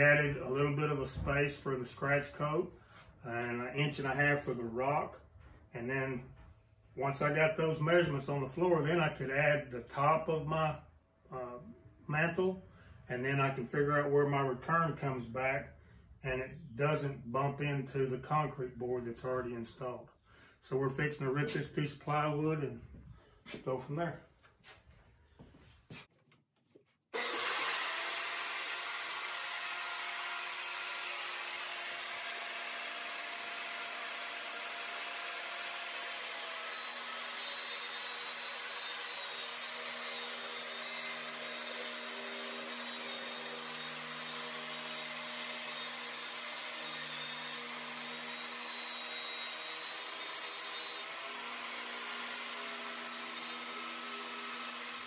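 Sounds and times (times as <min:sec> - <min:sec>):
table saw ripping plywood: 0:27.1 - 0:55.0.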